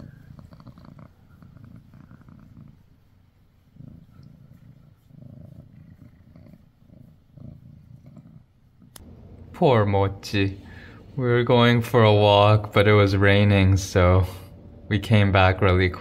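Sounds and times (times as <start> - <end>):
cat purring: 0.0 - 16.0.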